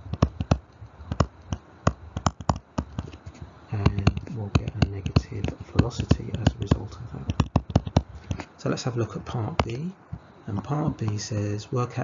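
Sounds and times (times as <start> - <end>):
stylus tapping on tablet screen: 0.0 - 3.2, 3.8 - 8.5, 9.6 - 10.3.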